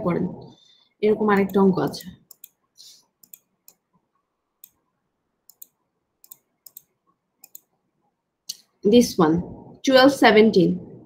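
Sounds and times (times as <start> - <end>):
computer mouse clicks: 1.3 - 2.6, 3.2 - 3.8, 4.6 - 4.8, 5.5 - 7.7.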